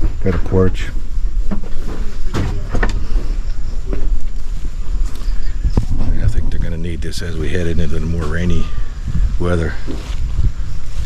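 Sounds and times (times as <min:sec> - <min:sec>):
wind rumble on microphone: 0:00.0 - 0:11.0
knocks and thuds: 0:01.4 - 0:03.2.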